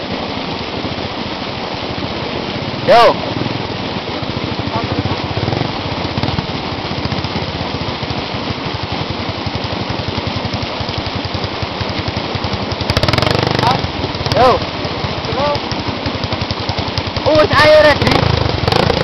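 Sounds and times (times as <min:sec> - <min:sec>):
dirt bike engine idling: 0:02.7 - 0:19.0.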